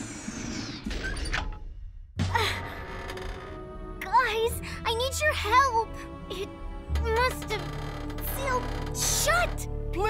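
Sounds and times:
background music: 2.2 - 10.0.

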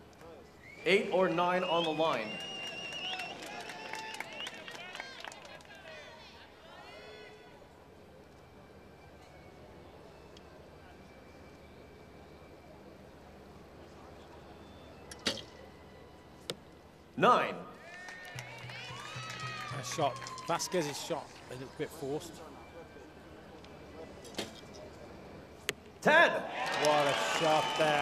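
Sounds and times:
arrow striking target: 15.2 - 15.5, 24.3 - 24.6.

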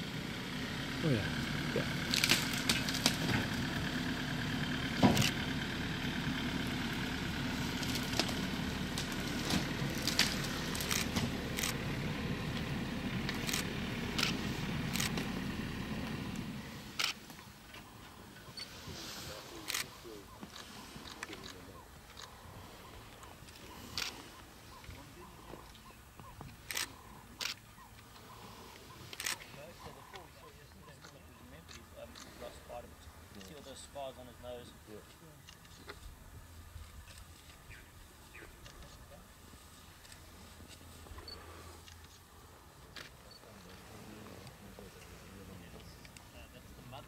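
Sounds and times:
vehicle engine idling: 0.0 - 47.0.

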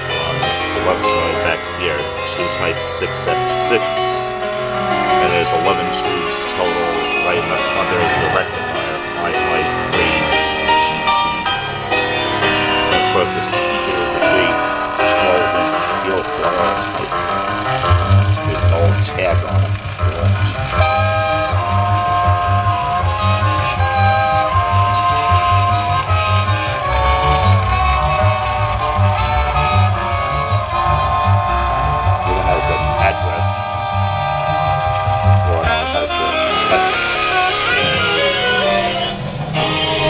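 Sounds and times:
bass beat: 0.0 - 40.0
music from radio loudspeaker: 0.0 - 40.0
voice on radio: 0.8 - 4.0, 5.2 - 10.8, 12.9 - 17.4, 18.2 - 20.4, 32.2 - 33.5, 35.4 - 37.0.

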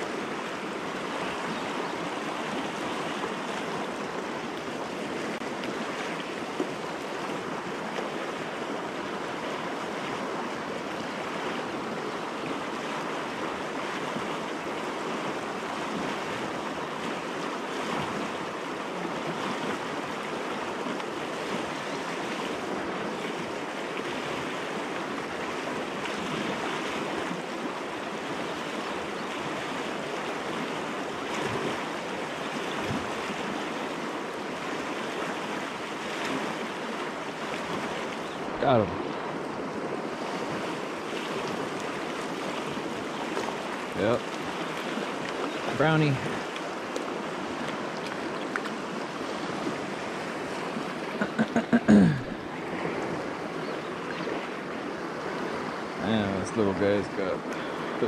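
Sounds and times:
river rushing over rocks: 0.0 - 58.0.

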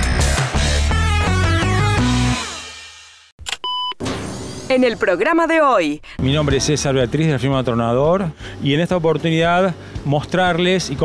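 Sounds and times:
short electronic beep: 3.5 - 4.7.

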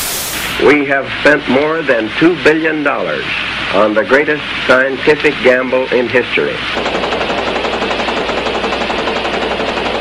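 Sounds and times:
rapid mechanical clatter: 5.1 - 10.0.

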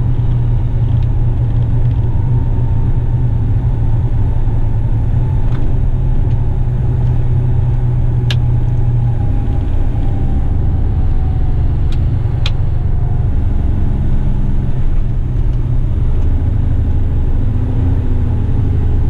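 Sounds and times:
diesel truck engine rumbling: 0.0 - 19.0.

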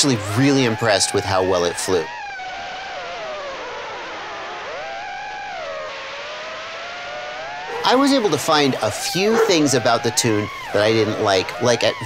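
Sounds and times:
quadcopter propellers whining: 7.7 - 12.0.

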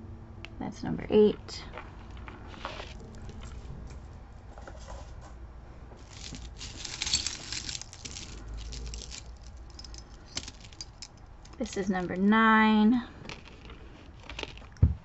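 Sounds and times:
rustling: 1.8 - 5.4, 6.0 - 15.0
metal chains jingling: 6.0 - 12.0.

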